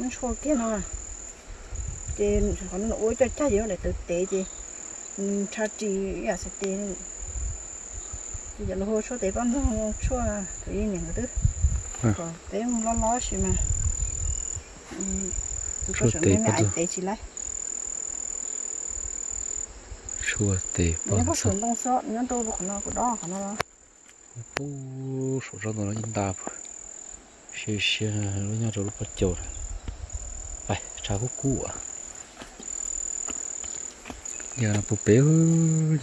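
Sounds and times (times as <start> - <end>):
woman talking: 0.0 - 0.9, 2.2 - 4.5, 5.2 - 7.0, 8.6 - 11.4, 12.1 - 13.7, 14.9 - 17.3, 21.1 - 23.6
high-pitched insect trill: 0.0 - 36.0.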